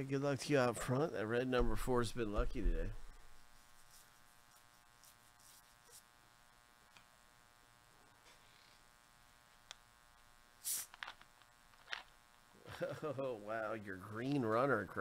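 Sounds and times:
faint electrical buzz: 0:00.0 - 0:15.0.

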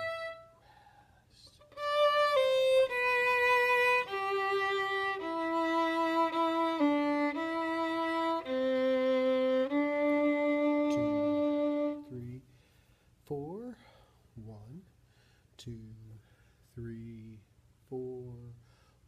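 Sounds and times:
violin slow melody: 0:00.0 - 0:00.7, 0:01.4 - 0:12.4.

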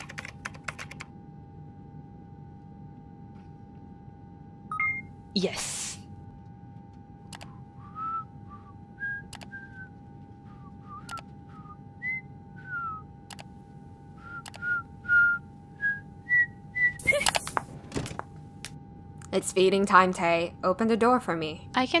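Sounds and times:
person whistling a tune: 0:07.8 - 0:13.0, 0:14.2 - 0:17.3
sharp clicks: 0:13.3 - 0:13.5.

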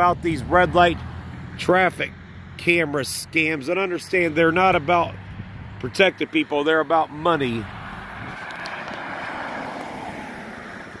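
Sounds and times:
passing vehicle: 0:00.0 - 0:11.0.

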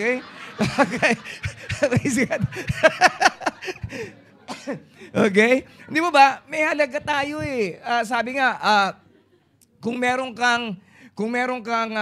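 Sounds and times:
man chuckling: 0:00.3 - 0:04.8.

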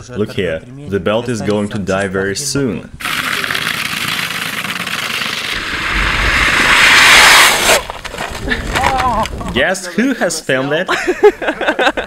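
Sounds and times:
spiked wheel clattering on ice: 0:03.0 - 0:05.6.

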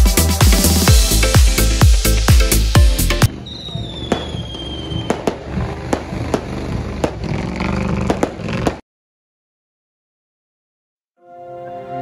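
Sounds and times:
fireworks banging: 0:03.2 - 0:08.8
firework whistle: 0:03.3 - 0:07.2.

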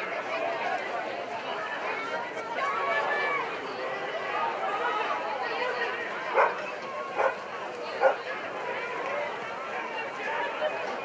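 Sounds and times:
dog barking: 0:06.3 - 0:06.6, 0:07.2 - 0:07.4, 0:08.0 - 0:08.2.

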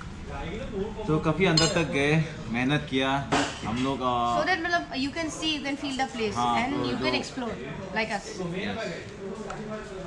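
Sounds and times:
people talking: 0:00.3 - 0:10.0
cutlery clinking on plates: 0:01.6 - 0:01.9.

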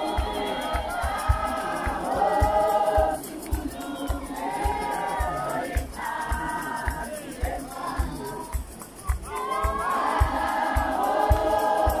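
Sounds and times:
congregation singing a hymn: 0:00.0 - 0:12.0
low steady beat: 0:00.0 - 0:12.0.

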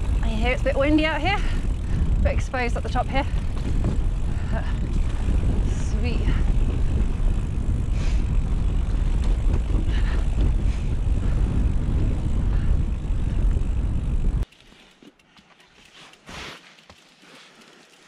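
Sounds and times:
wind buffeting microphone: 0:00.0 - 0:14.4
bike tyres rattling on dirt trail: 0:00.0 - 0:18.0.

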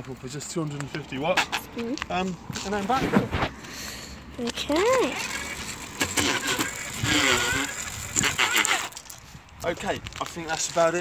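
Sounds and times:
chain and sprockets rattling: 0:04.5 - 0:11.0.

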